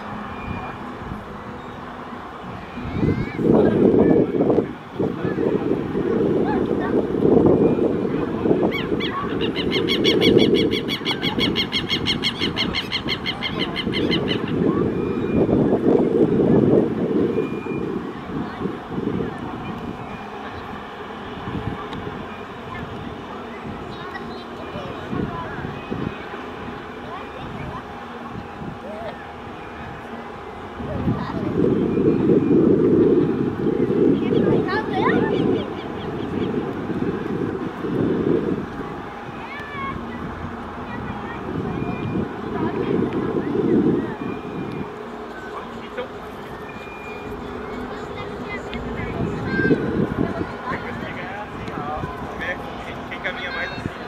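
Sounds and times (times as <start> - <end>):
jet engines rumbling: 0.0 - 54.0
bird calling rapidly: 8.7 - 14.7.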